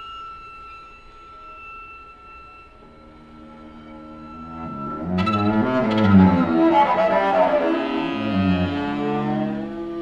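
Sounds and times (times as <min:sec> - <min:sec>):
high note on bowed strings: 0:03.4 - 0:09.9.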